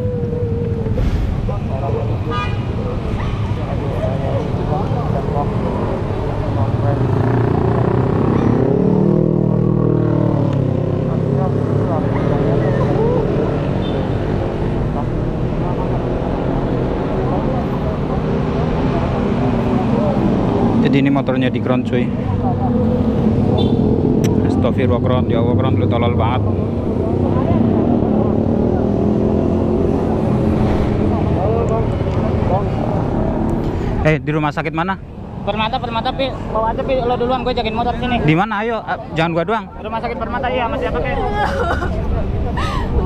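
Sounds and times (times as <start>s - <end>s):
vehicle passing close: 0.0s - 34.2s
road traffic rumble: 0.0s - 43.0s.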